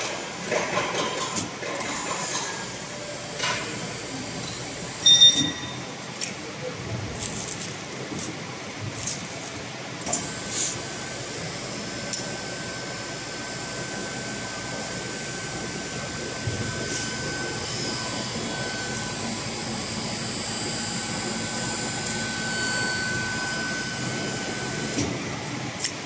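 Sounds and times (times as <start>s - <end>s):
textile machine whirring: 0.0s - 26.0s.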